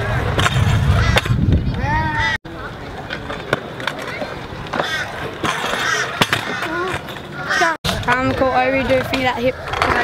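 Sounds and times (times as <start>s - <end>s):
scooter wheels rolling on concrete: 0.0s - 10.0s
scooter decks clacking on ground: 2.9s - 10.0s.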